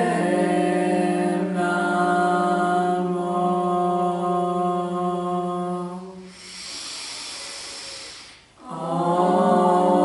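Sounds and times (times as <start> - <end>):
deep hissing inhale: 6.2 - 8.6.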